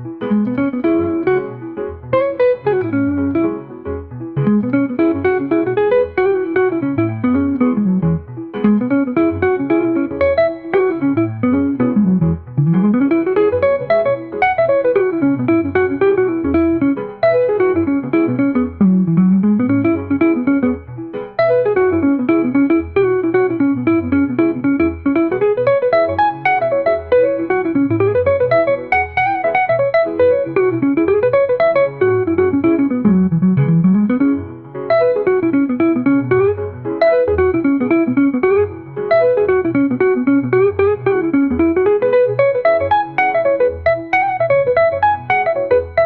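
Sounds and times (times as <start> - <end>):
bass line: 0.0 - 46.0
jazz guitar melody: 0.0 - 46.0.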